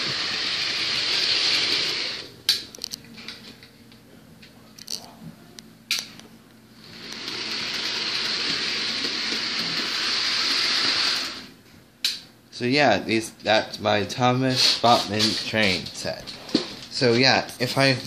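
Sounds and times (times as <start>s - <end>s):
model train motor whirring: 0.0s - 2.3s, 6.9s - 11.5s.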